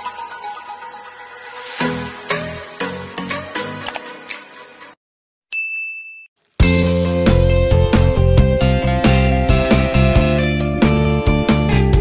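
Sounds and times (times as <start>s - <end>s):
background music: 0.0s - 5.0s, 6.6s - 12.0s
notification bell ding: 5.5s - 6.3s.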